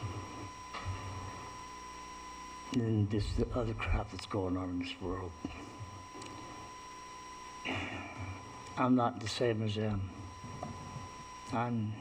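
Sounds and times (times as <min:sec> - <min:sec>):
faint steady whine: 0:00.0 - 0:12.0
low steady background noise: 0:00.0 - 0:12.0.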